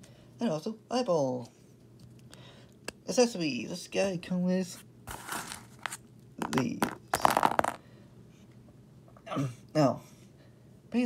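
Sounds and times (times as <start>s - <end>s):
plastic pieces rattling and clicking: 6.4s - 7.8s.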